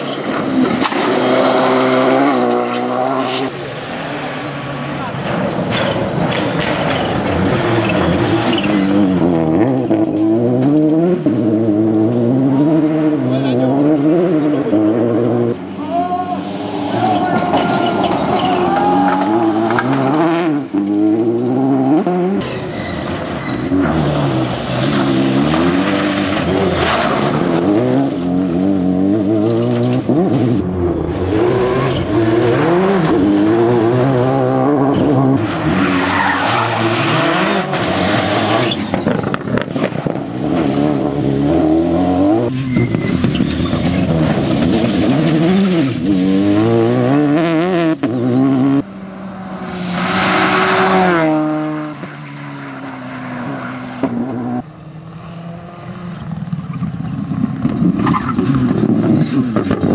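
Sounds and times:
rally car engine revving: 0.0s - 59.9s.

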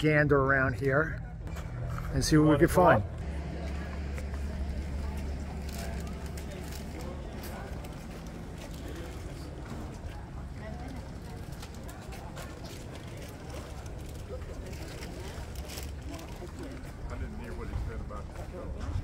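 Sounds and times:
voices of passers-by: 0.0s - 19.0s.

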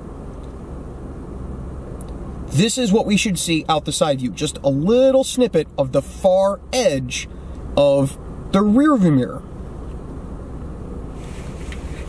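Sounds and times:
low rumble inside car: 0.0s - 12.0s
faint hiss: 9.6s - 12.0s.

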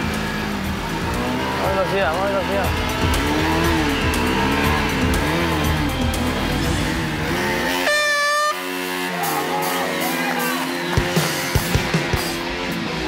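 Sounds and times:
background music: 0.0s - 13.0s
motorcycle engines revving: 0.0s - 13.0s.

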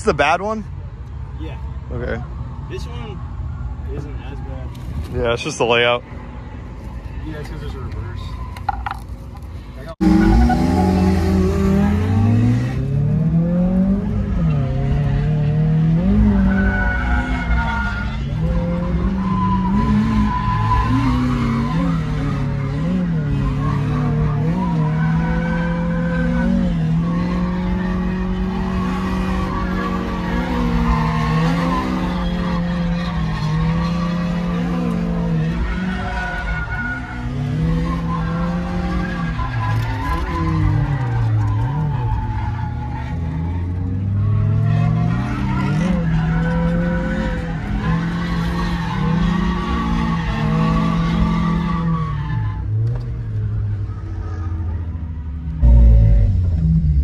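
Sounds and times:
car engine revving: 9.9s - 57.0s
tyres squealing: 16.1s - 53.4s.

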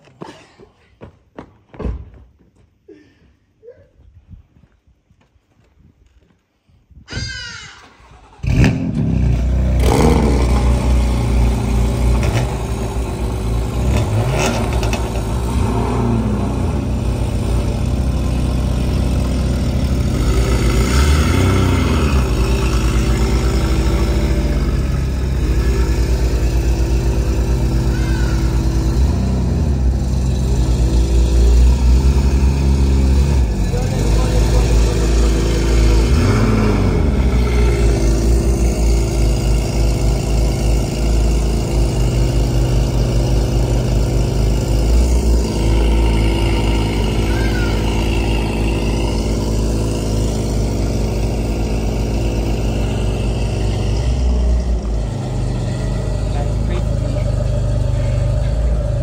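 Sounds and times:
engine revving: 8.0s - 59.0s
sports car engine idling: 9.5s - 59.0s.

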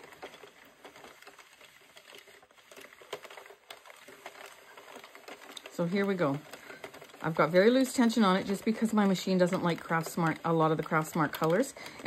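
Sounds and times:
knitting machine plastic clicks: 0.0s - 12.0s.

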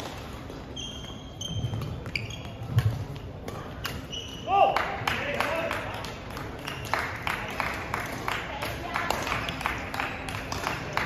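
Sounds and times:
sneakers squeaking on court: 0.4s - 4.4s.

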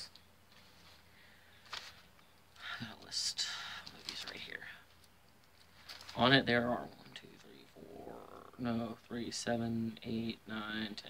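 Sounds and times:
paper rustling: 0.5s - 2.2s, 3.8s - 6.4s.

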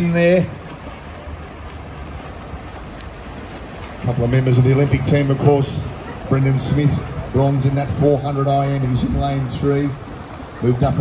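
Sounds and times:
distant swimmers splashing: 0.0s - 11.0s.

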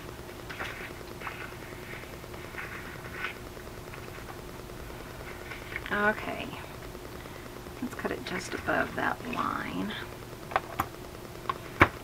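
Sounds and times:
low steady hum: 0.0s - 12.0s
paper rustling and scraping: 0.4s - 4.4s, 5.0s - 5.9s.

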